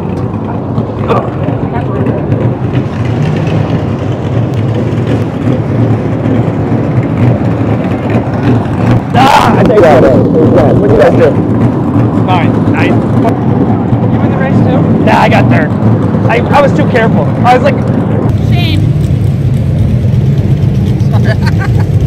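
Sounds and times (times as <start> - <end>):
low motor rumble: 0.0 - 22.0.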